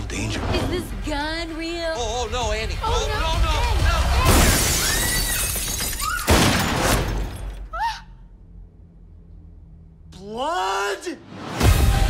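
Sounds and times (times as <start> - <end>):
glass shattering crash: 4.2 - 7.7.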